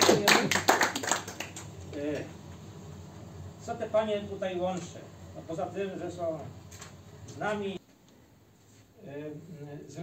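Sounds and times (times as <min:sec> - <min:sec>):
small group applauding: 0:00.0 - 0:01.9.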